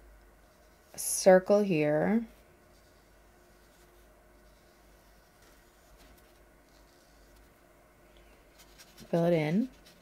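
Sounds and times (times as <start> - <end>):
brush strokes on paper: 0.4 - 7.6, 8.5 - 10.0.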